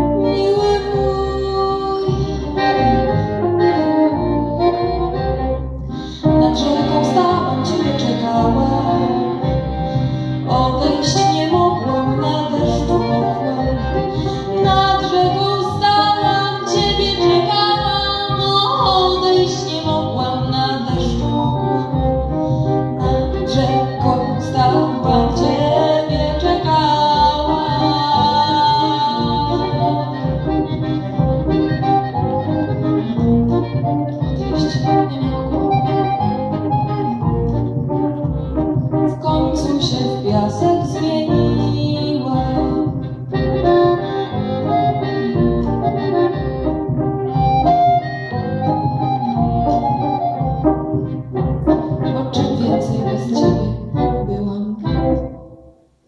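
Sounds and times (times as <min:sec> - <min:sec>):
accordion: 0:00.0 - 0:55.6
double bass: 0:00.0 - 0:55.6.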